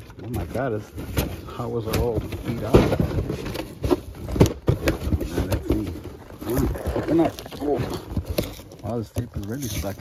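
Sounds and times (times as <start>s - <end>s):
tape ripping and cardboard scraping: 0.3s - 10.0s.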